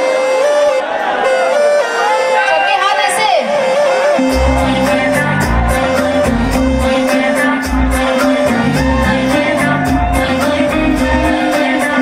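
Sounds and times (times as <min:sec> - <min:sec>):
held keyboard melody: 0:00.0 - 0:12.0
woman singing: 0:04.3 - 0:12.0.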